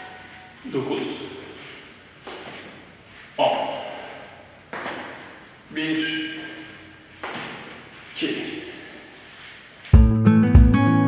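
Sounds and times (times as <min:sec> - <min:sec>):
feet thudding on gym floor: 0:02.2 - 0:03.0, 0:04.7 - 0:05.5, 0:07.2 - 0:08.2.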